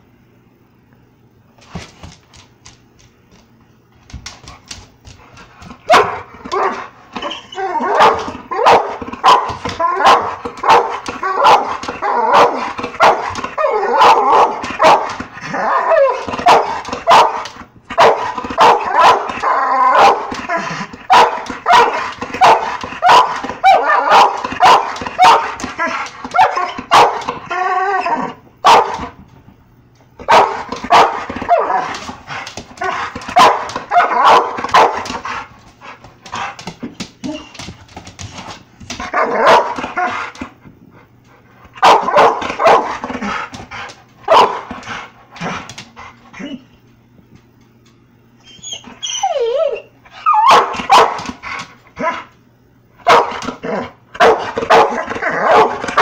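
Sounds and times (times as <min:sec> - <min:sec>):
dog barking sharply: 0:16.4 - 0:17.4, 0:26.3 - 0:27.3, 0:33.3 - 0:35.0, 0:44.3 - 0:44.6, 0:50.5 - 0:51.3.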